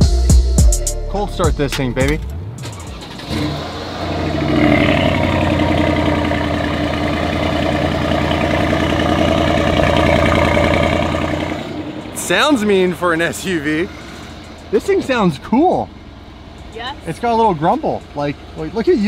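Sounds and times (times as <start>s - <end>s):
car engine starting and idling: 0.0s - 19.0s.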